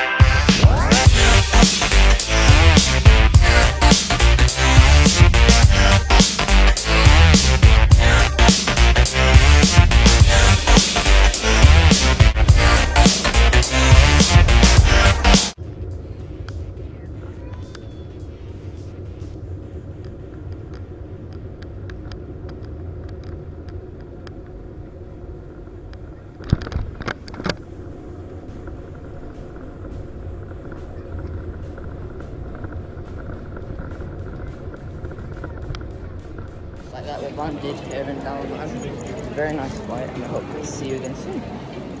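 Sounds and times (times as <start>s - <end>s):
airplane cabin rumble: 0.0s - 42.0s
wheels touching down thump: 16.4s - 37.0s.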